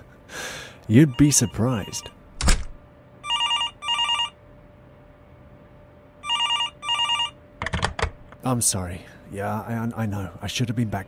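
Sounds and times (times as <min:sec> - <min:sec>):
telephone ringing: 0:00.9 - 0:02.1, 0:03.2 - 0:04.4, 0:06.2 - 0:07.4.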